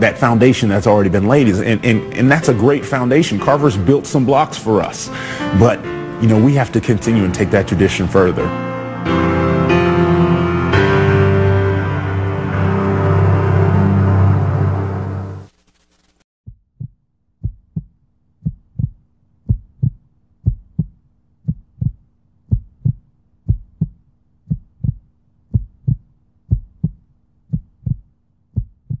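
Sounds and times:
music: 0.0 - 15.5
heartbeat thumps: 16.5 - 29.0.

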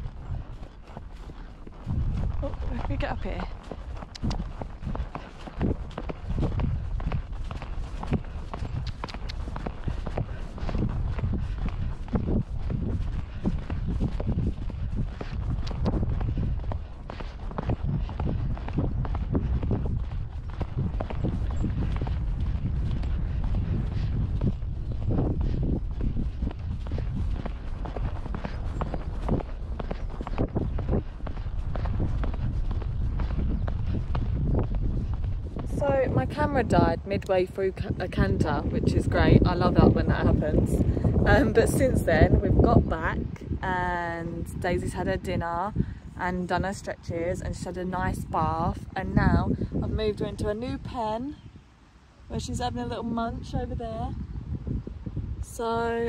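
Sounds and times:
low rumble: 0.0 - 50.6
horse hooves cantering on grass: 0.0 - 51.6.

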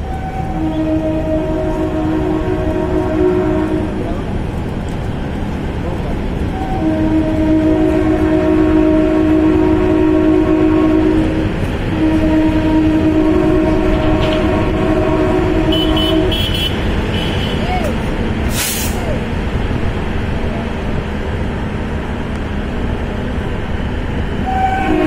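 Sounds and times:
train horn blasts: 0.0 - 4.2, 6.5 - 17.7, 24.3 - 25.0
moving train rumbling: 0.0 - 25.0.

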